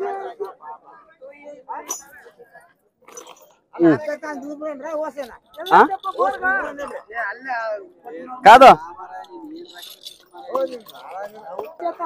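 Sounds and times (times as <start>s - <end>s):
brass bells jingling: 3.1s - 7.4s, 8.0s - 12.0s.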